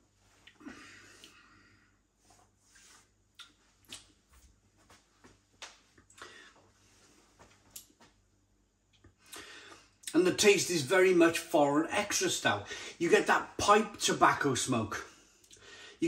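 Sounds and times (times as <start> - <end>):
lip smacks and mouth clicks: 3.4 - 4.2, 7.7 - 7.9, 15.4 - 15.6
breathing through nose: 9.3 - 9.9, 12.7 - 13.0, 15.6 - 16.0.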